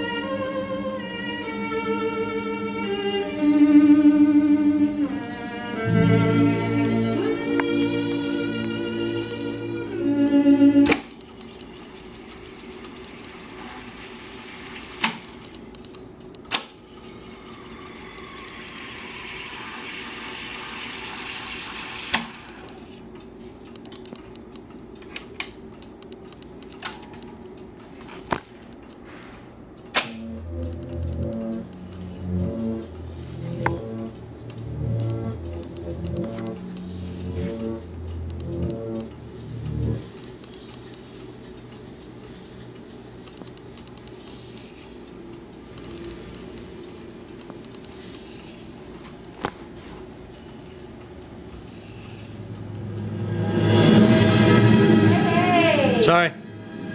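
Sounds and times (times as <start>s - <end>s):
tape deck hum and whir: 0.0s - 54.8s
music with rhythmic bass: 30.2s - 36.6s.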